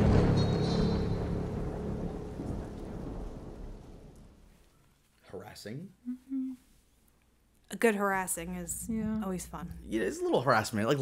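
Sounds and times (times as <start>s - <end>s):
thunder rumbling: 0.0s - 4.6s
rain: 0.0s - 4.9s.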